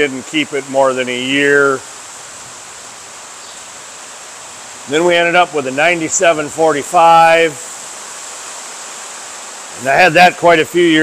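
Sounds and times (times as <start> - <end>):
man talking: 0.0 - 1.8, 4.9 - 7.7, 9.8 - 11.0
background hiss: 0.0 - 11.0
faint high whine: 0.0 - 11.0.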